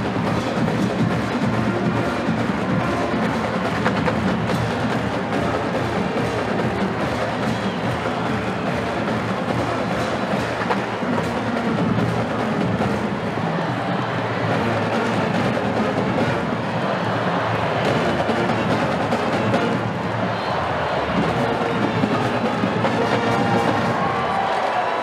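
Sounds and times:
drumline percussion: 0.0s - 25.0s
marching band playing: 0.0s - 25.0s.

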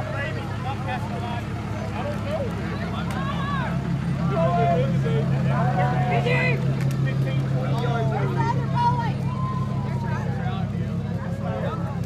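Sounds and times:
people talking and calling out: 0.0s - 12.0s
truck engine running: 0.0s - 12.0s.

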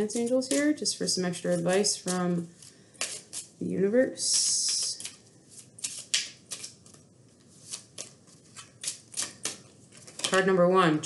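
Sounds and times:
cards being shuffled: 4.3s - 10.4s.

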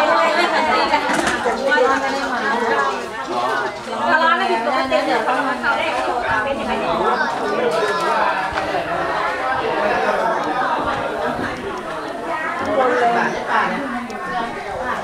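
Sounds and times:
overlapping conversation: 0.0s - 15.0s.

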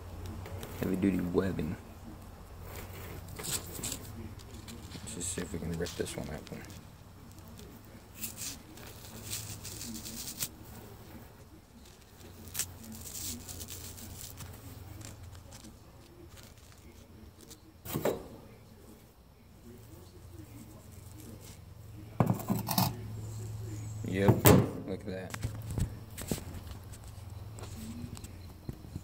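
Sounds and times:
fingers scratching at cocoon: 2.6s - 17.7s.

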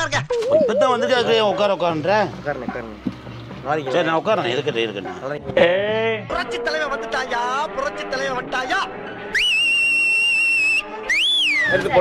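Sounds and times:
loud whistle: 9.4s - 11.8s.

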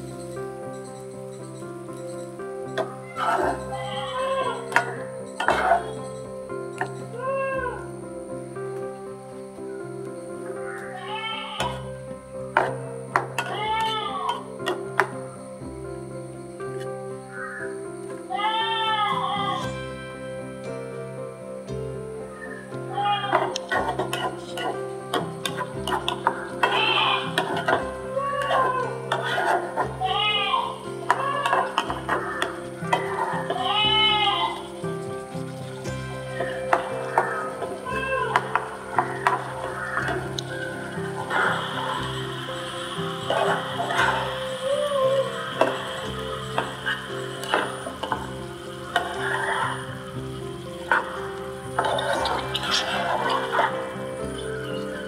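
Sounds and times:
background music: 0.0s - 55.0s
spatula scraping frying pan: 23.4s - 34.8s
cat meowing: 33.5s - 34.6s, 37.2s - 38.5s.

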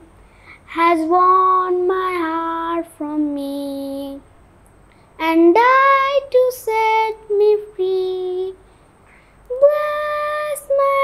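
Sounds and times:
boy singing a hymn: 0.0s - 4.2s, 5.2s - 8.7s, 9.5s - 11.0s.

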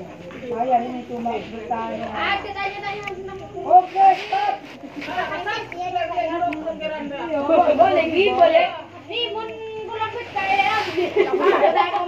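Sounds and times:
chatter of voices with children: 0.0s - 12.0s.

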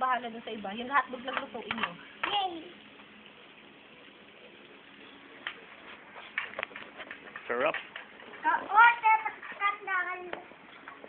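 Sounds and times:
food sizzling on grill pan: 0.0s - 11.0s.

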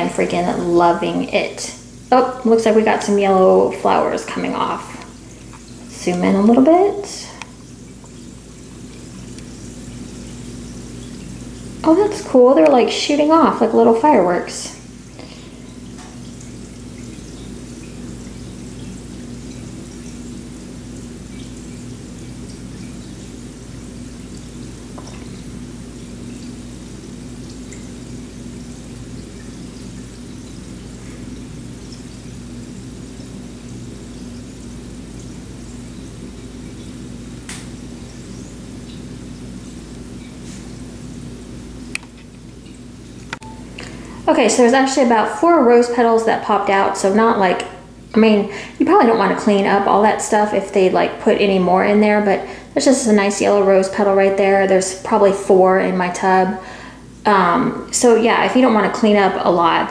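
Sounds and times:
bath bomb bubbling in water: 0.0s - 59.9s.

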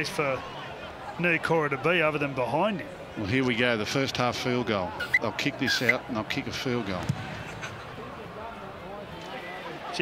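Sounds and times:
crowd murmur: 4.3s - 10.0s.

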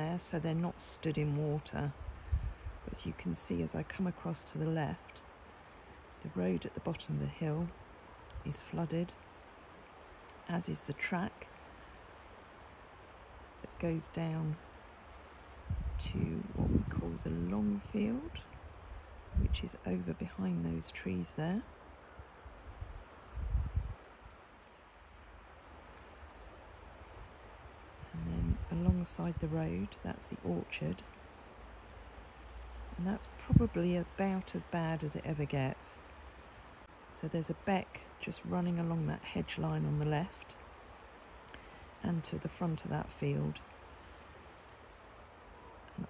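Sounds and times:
wind rumble on microphone: 0.0s - 9.2s, 13.4s - 31.2s, 32.8s - 40.6s
faint steady hiss: 0.0s - 46.0s
low rumble: 15.6s - 21.6s.

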